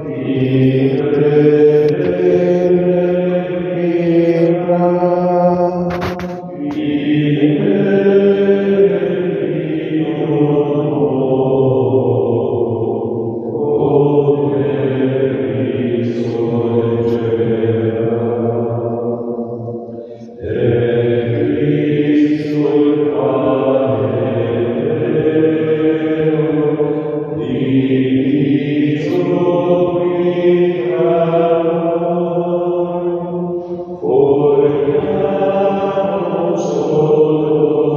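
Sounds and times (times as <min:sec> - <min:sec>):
slow devotional singing: 0:00.0 - 0:37.9.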